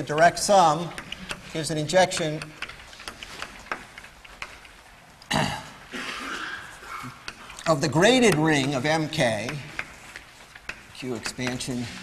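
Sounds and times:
man clearing his throat: 5.3 - 6.7
chalk tapping on blackboard: 7.1 - 12.0.

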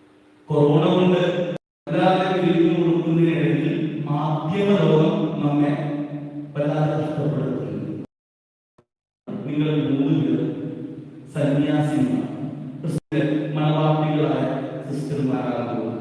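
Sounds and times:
man chanting over microphone: 11.3 - 16.0.

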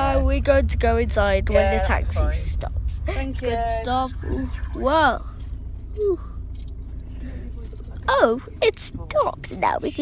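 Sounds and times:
taxi rumble from inside cabin: 0.0 - 10.0.

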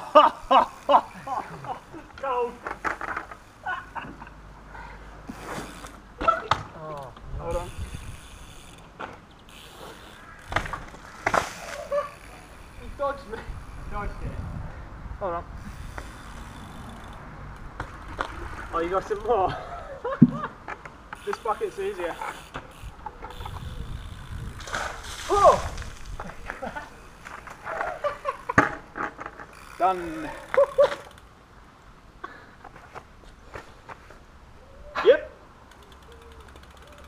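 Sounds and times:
bicycle rolling on wet tarmac: 0.0 - 6.2, 7.4 - 14.4, 15.6 - 19.7, 21.2 - 31.3, 35.7 - 37.0
trials bike riding: 0.0 - 37.0
short voice-like cry: 34.8 - 35.4.

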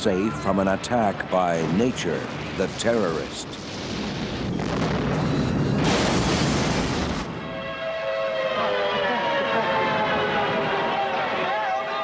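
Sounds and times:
rushing wind and debris: 1.5 - 7.6.

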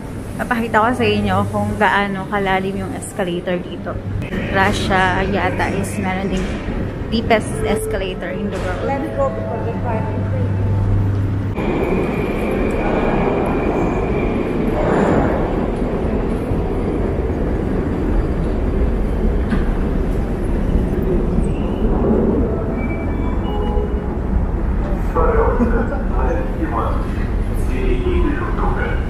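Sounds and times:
rumble of rail and escalator machinery: 0.0 - 29.0.

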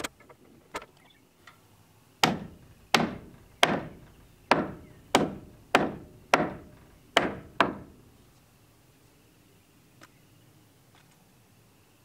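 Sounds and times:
hammer striking nails into wood: 2.2 - 8.0.

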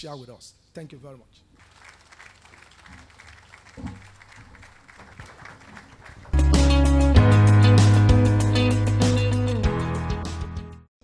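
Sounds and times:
people clapping: 1.6 - 6.8
loud music with heavy bass: 6.4 - 10.8.

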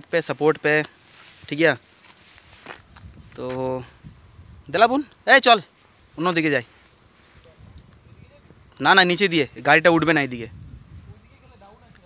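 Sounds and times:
faint clicks and rustles: 0.0 - 4.2.

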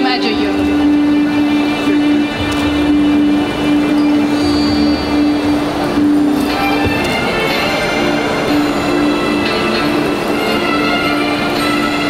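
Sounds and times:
loud droning note: 0.0 - 12.0.

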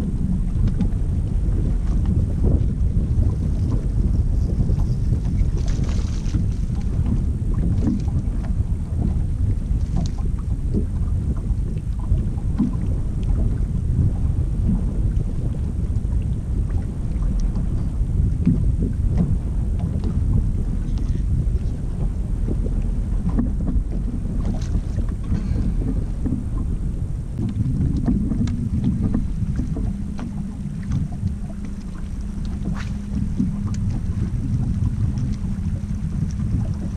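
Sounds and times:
water lapping against boat hull: 0.0 - 36.9
wind buffeting microphone: 0.0 - 36.9.

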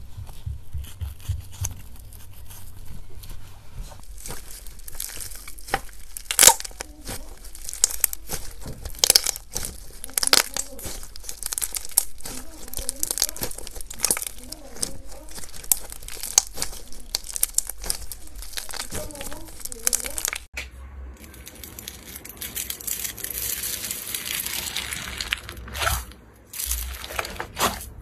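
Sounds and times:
slime crackles and sticky pops: 4.0 - 20.5.

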